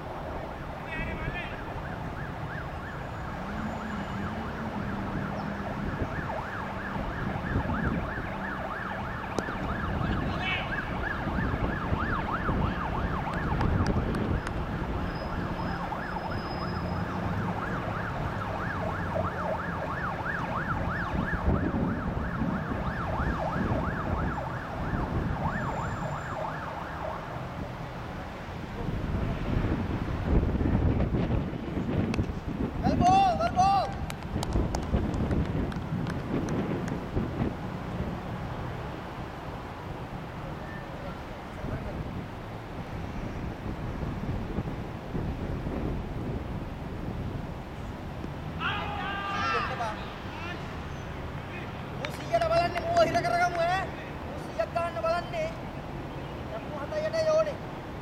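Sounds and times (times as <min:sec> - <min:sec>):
wind: 0:00.0 - 0:58.0
siren wailing: 0:00.3 - 0:27.6.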